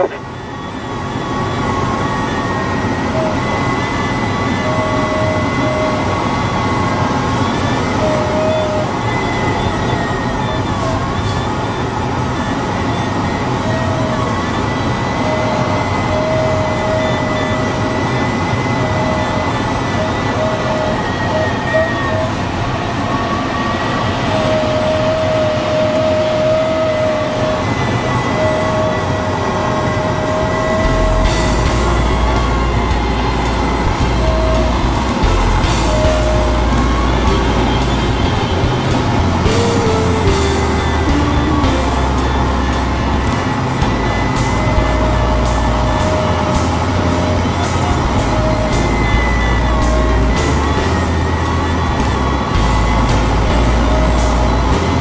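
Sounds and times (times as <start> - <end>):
faint high wavering tones: 0.0 - 55.0.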